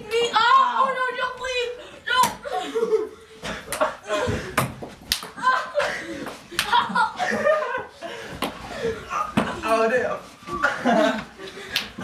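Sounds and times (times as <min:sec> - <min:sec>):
ping pong balls smacking: 0:04.5 - 0:05.4.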